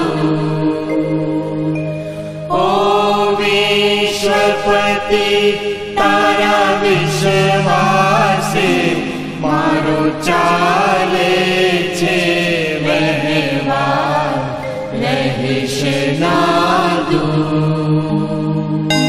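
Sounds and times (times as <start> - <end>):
devotional singing: 0.0 - 19.0
low drone: 5.7 - 10.5.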